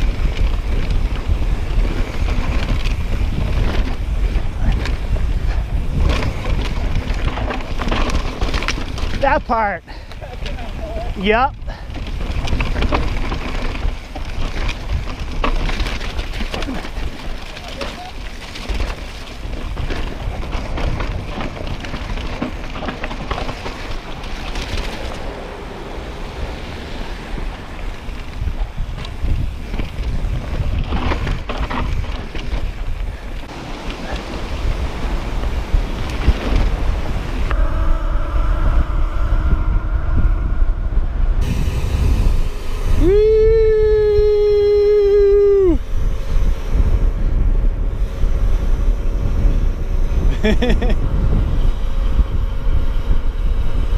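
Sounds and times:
tyres rumbling on dirt trail: 0:00.0 - 0:53.9
wind buffeting microphone: 0:00.0 - 0:53.9
loud held sliding tone: 0:36.7 - 0:47.4.

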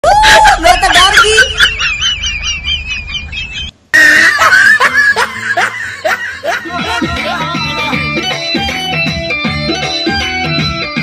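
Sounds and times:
people laughing: 0:00.2 - 0:09.0.

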